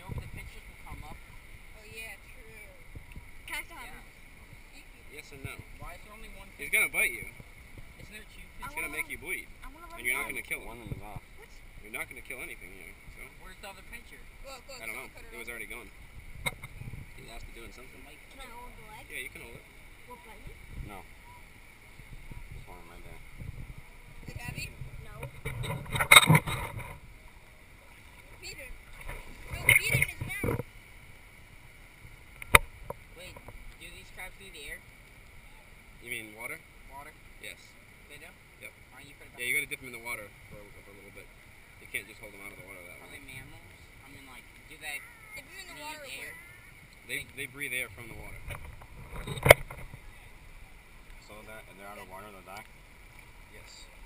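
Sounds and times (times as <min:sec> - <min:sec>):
low wind: 0:00.0 - 0:54.0
water noise: 0:00.0 - 0:54.0
children's voices: 0:44.9 - 0:46.8.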